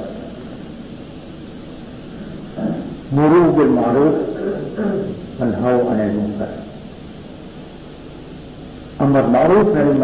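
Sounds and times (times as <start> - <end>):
steady background hiss: 0.0 - 10.0
man speaking: 2.6 - 6.8, 9.0 - 10.0.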